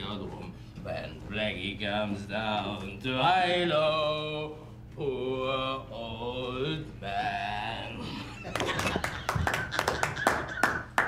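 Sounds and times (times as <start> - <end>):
hands clapping: 8.5 - 11.0.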